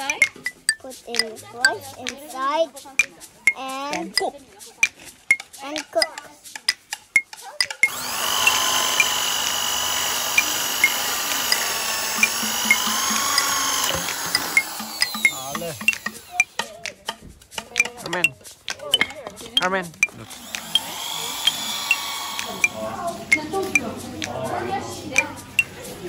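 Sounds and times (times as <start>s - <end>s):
electric drill whining: 7.8s - 16.5s, 20.2s - 22.9s.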